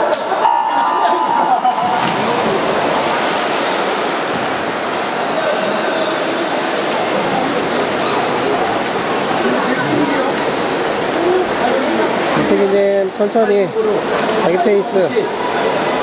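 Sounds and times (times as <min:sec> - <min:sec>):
swimmers splashing: 0:00.0 - 0:12.7
start signal tone: 0:00.4 - 0:02.0.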